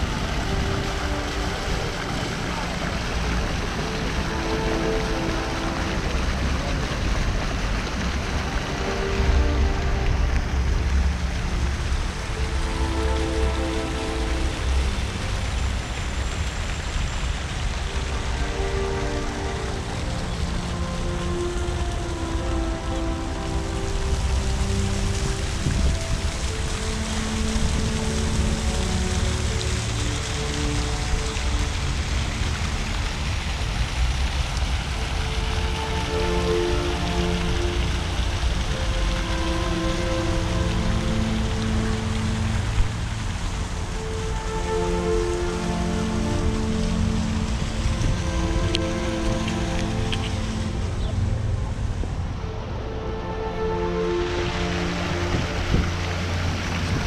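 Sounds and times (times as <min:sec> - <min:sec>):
fountain splashing into stone basin: 0:00.0 - 0:57.0
slow music of long held notes: 0:00.0 - 0:57.0.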